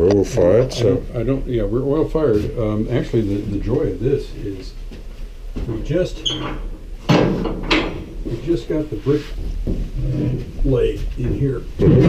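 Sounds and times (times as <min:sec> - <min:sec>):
metal door squeak: 0:06.2 - 0:08.1
metal scraping clatters: 0:06.2 - 0:10.8.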